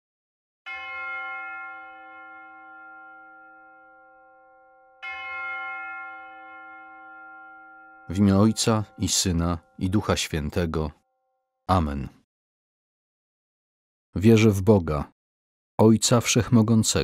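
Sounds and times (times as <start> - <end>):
bell ringing: 0.7 - 10.5.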